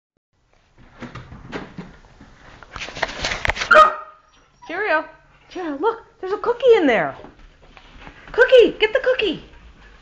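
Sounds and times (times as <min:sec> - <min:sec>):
rustling and scraping: 0:00.6 - 0:03.8, 0:07.0 - 0:08.5
clicks and scuffs of objects: 0:02.5 - 0:03.7.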